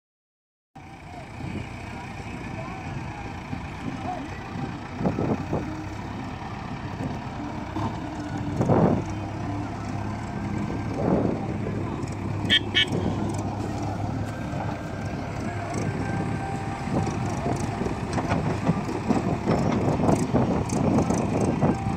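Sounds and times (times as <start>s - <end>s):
diesel engine running: 0.8s - 21.9s.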